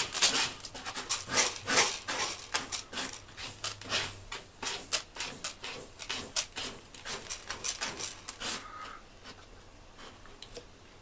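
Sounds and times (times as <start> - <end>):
cat scraping litter: 0.0 - 9.4.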